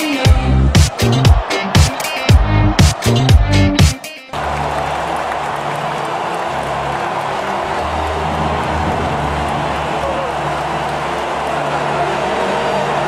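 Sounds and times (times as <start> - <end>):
large crowd roaring: 0.1 - 13.0.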